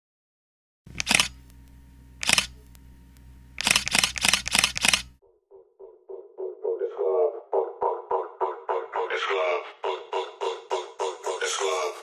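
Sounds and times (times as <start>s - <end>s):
faint low hum: 0.9s - 5.0s
camera shutter clicks: 1.0s - 1.5s, 2.2s - 2.6s, 3.6s - 5.2s.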